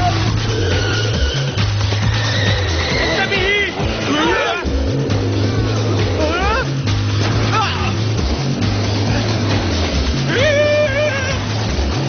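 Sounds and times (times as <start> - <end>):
cartoon action music: 0.0 - 12.0.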